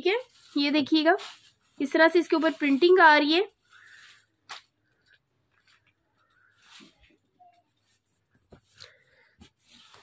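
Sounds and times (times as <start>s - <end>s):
cloth rustling: 0.0s - 10.0s.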